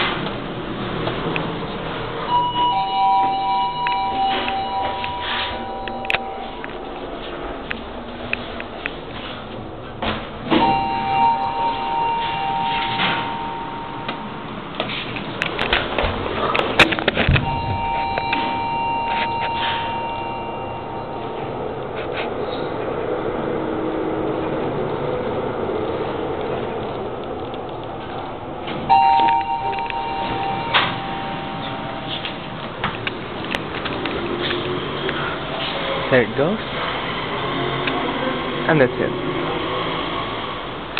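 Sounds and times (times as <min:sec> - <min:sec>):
lift doors sliding: 0:00.0 - 0:23.0, 0:28.0 - 0:36.0
electronic two-tone chime: 0:02.3 - 0:07.0, 0:10.6 - 0:14.5, 0:17.4 - 0:21.6, 0:28.9 - 0:32.6.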